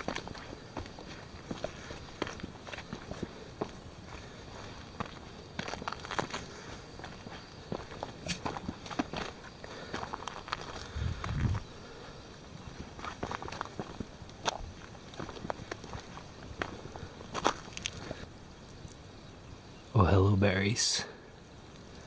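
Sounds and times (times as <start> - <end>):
footsteps crunching on rock: 0.0 - 11.7, 12.5 - 18.2.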